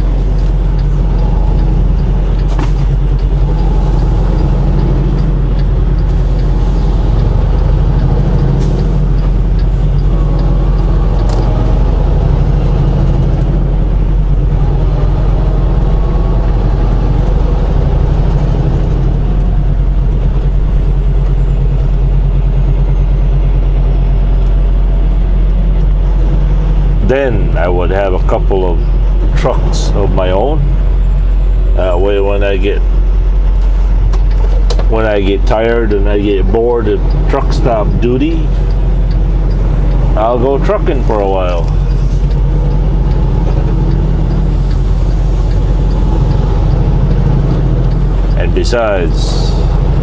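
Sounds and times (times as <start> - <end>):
road noise: 0.0 - 50.0
truck engine drone: 0.0 - 50.0.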